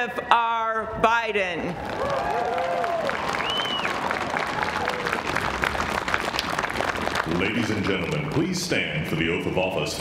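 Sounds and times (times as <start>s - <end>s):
audience applauding: 1.8s - 8.9s.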